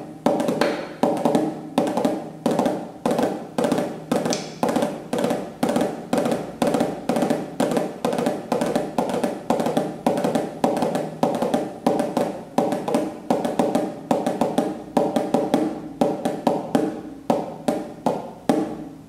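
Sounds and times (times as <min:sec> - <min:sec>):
snare drum with drumsticks: 0:00.2 - 0:18.8.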